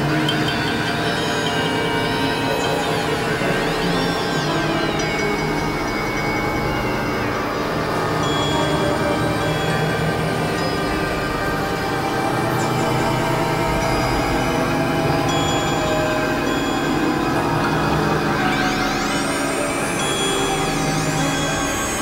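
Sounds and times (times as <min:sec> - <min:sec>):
synthesizer drone music: 0:00.0 - 0:22.0.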